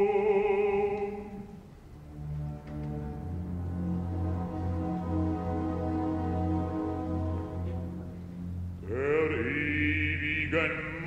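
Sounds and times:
man singing opera with vibrato: 0:00.0 - 0:01.6, 0:08.8 - 0:11.0
low orchestral bass: 0:00.0 - 0:11.0.

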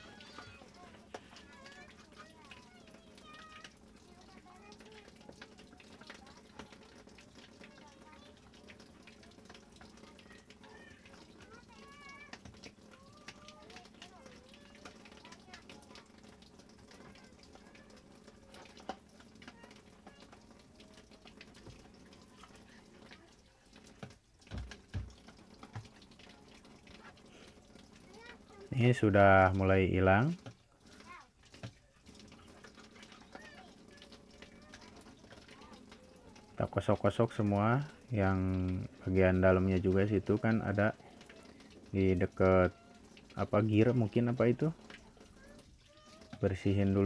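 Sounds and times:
water sloshing and dripping: 0:00.0 - 0:47.0.

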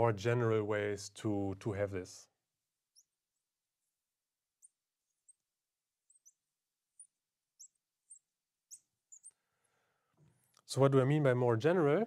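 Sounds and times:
marker pen squeaking on glass: 0:02.9 - 0:04.0, 0:04.6 - 0:09.3.

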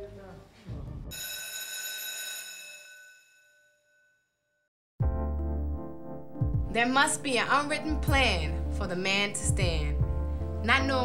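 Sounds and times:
bell ding: 0:01.1 - 0:04.3.

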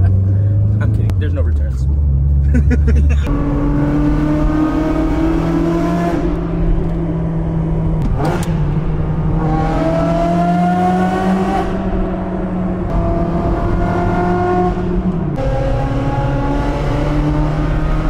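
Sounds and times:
car engine accelerating through gears: 0:01.9 - 0:18.0.

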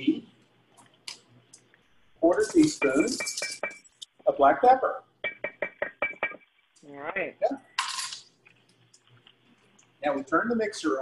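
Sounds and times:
spoons tapping on plastic board: 0:02.4 - 0:04.0, 0:05.2 - 0:06.5.

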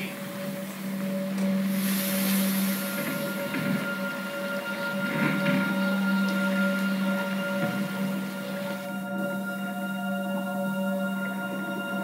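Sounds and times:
storm wind and water rushing: 0:00.0 - 0:09.5
film music: 0:00.0 - 0:12.0
high hiss: 0:00.0 - 0:12.0
steady low hum: 0:00.0 - 0:12.0.

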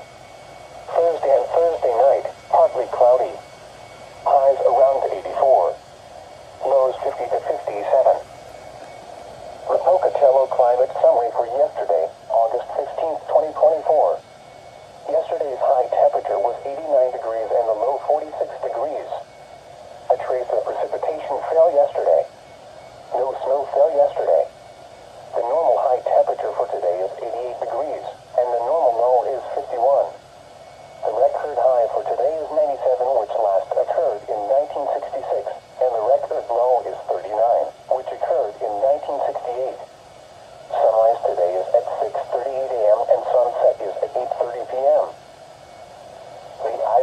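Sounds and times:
computer voice from small speaker: 0:00.9 - 0:03.4, 0:04.3 - 0:05.8, 0:25.4 - 0:30.2, 0:31.0 - 0:39.8, 0:40.7 - 0:45.2.

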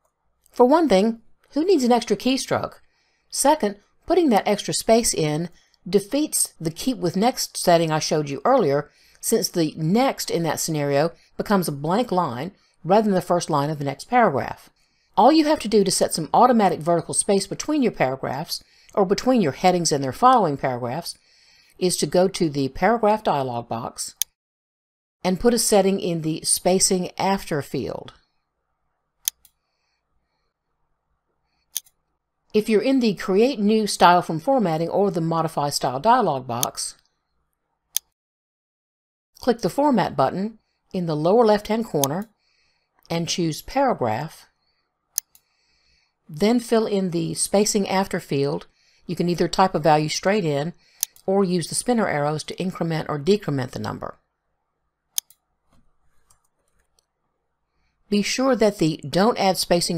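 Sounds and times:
computer mouse clicks: 0:29.2 - 0:29.6, 0:31.7 - 0:32.1, 0:45.2 - 0:45.5, 0:50.9 - 0:51.3, 0:55.1 - 0:57.1
computer mouse click: 0:51.0 - 0:51.3, 0:55.2 - 0:55.4.

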